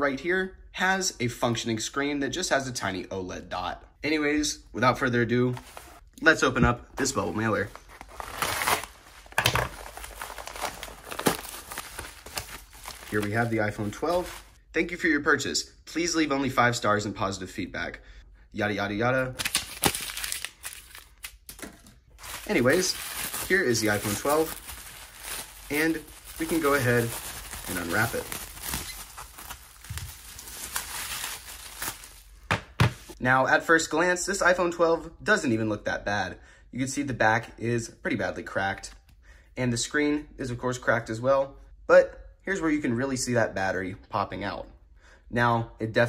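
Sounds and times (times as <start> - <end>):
paper mailer crinkling and tearing: 7.4 - 14.6, 19.4 - 21.6, 22.2 - 33.1.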